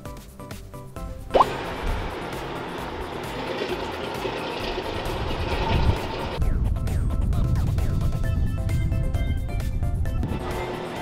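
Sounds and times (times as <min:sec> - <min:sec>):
background music: 0:00.0 - 0:11.0
boat engine running: 0:01.2 - 0:06.4, 0:10.2 - 0:11.0.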